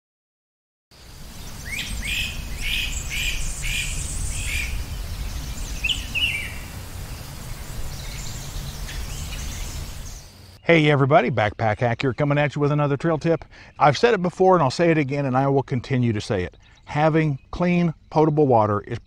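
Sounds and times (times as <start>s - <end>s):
songbird chirping: 1.0s - 19.0s.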